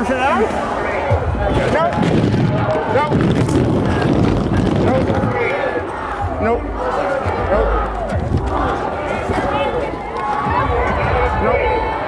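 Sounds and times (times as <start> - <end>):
voices talking over one another: 0.0 - 12.0
low rumble: 1.1 - 6.8.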